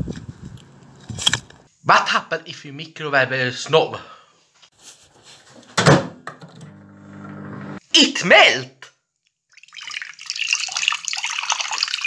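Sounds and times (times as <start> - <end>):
microwave oven humming: 6.6 - 7.8.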